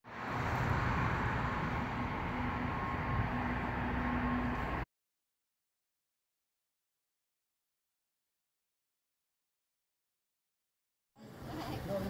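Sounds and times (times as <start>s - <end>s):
distant traffic: 0.0s - 4.9s.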